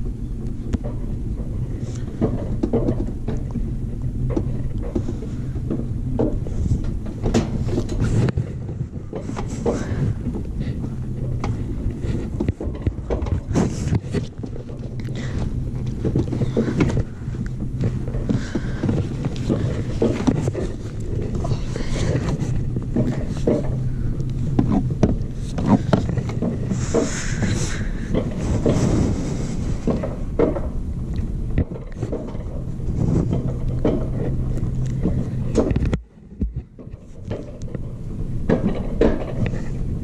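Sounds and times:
wind on microphone: 0.0s - 36.8s
coaster sled wheels rumbling: 0.0s - 40.0s
rattles and clacks: 0.0s - 40.0s.

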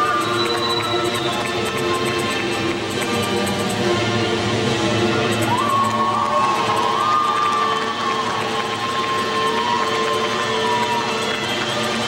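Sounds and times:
spectators cheering: 0.0s - 2.3s, 4.9s - 12.0s.

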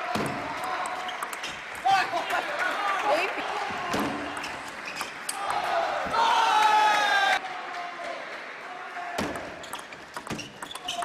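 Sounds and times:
voices in a large hall: 0.0s - 11.0s
table tennis ball clicks: 9.3s - 11.0s.

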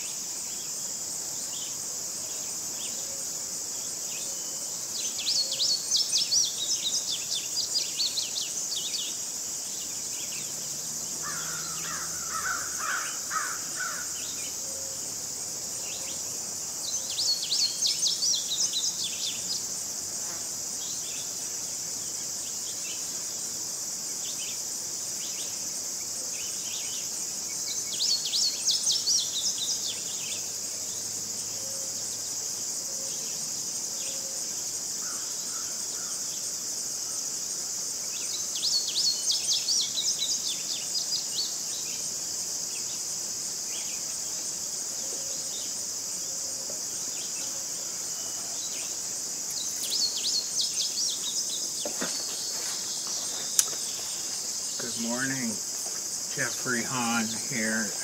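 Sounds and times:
crickets chirping drone: 0.0s - 58.0s
songbird singing: 0.0s - 58.0s.

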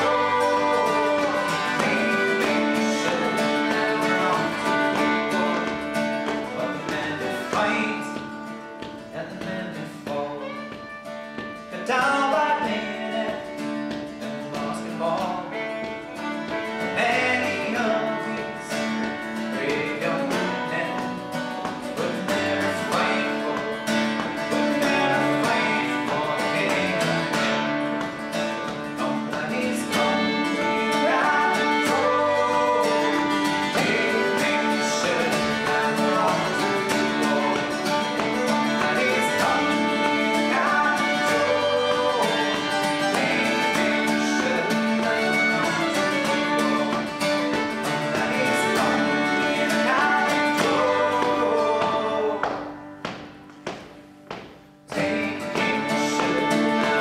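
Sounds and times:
fiddle melody: 0.0s - 9.1s, 10.0s - 52.8s, 55.0s - 57.0s
bouzouki: 0.0s - 57.0s
strummed acoustic guitar: 0.0s - 57.0s.

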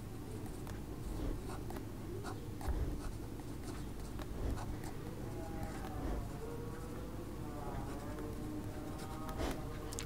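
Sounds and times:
low background hum: 0.0s - 10.0s
pen scratching on paper: 0.4s - 5.0s.

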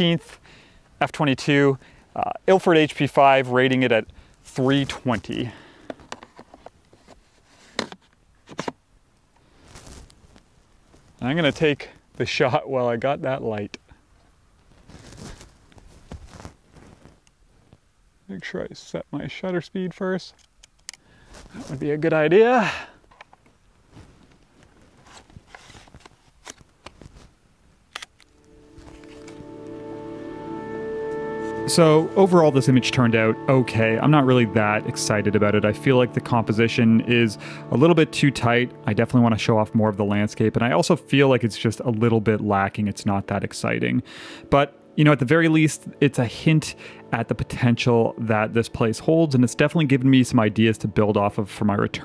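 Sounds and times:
camera handling clicks: 20.4s - 21.0s, 27.9s - 28.3s
background music sustained chords: 28.3s - 52.0s.

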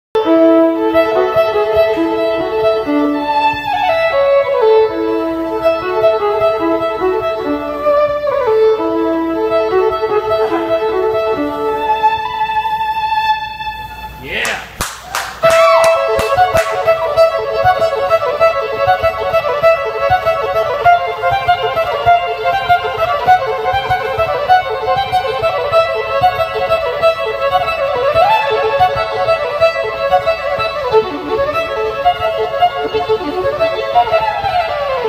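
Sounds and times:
fiddle solo: 0.2s - 14.2s, 15.4s - 35.0s
sharp knocks: 14.5s - 17.0s.

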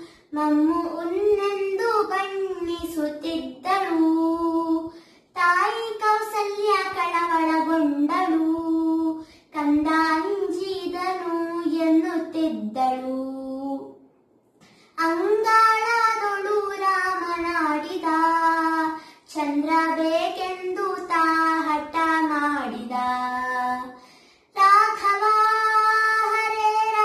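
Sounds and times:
girl singing unaccompanied: 0.0s - 14.0s, 14.9s - 27.0s.

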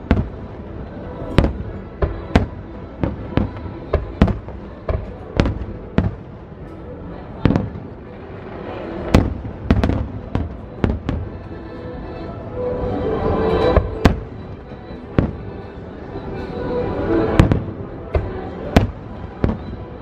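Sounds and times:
fireworks booming: 0.0s - 0.6s, 1.2s - 6.7s, 7.4s - 11.5s, 13.6s - 15.8s, 17.3s - 20.0s.

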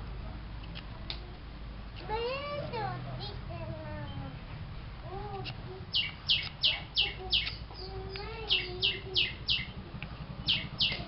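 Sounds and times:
bird chirping: 5.9s - 11.0s.

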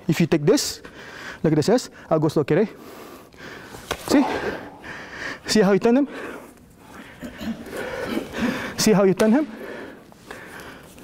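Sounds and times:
breathing: 0.8s - 2.1s, 2.7s - 5.5s, 6.1s - 8.8s, 9.5s - 11.0s
person speaking: 4.0s - 7.7s.

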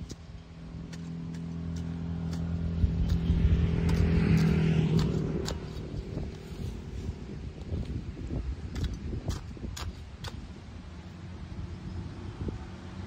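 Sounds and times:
hand tool clicking in soil: 0.0s - 6.8s, 7.6s - 10.6s
passing vehicle engine: 0.0s - 8.6s, 10.7s - 13.0s.

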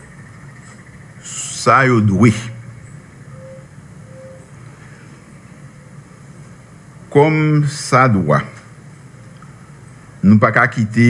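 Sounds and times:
low hum: 0.0s - 10.3s.

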